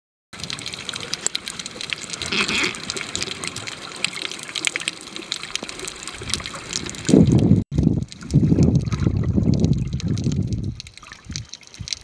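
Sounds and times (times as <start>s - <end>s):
underwater crackling and clicking: 0.4s - 12.0s
underwater water movement: 0.4s - 12.0s.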